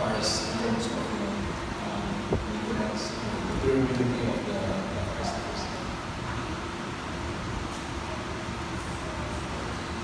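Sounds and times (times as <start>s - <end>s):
large room hum and rumble: 0.0s - 10.0s.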